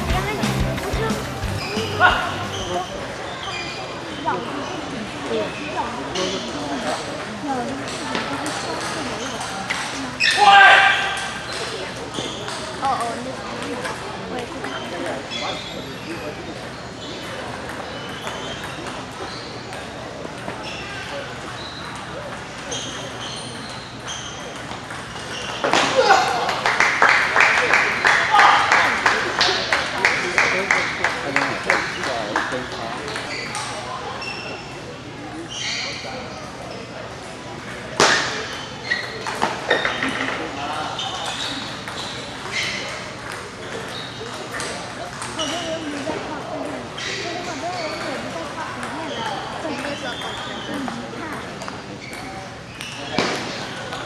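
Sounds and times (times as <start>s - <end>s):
murmur of voices: 0.0s - 54.0s.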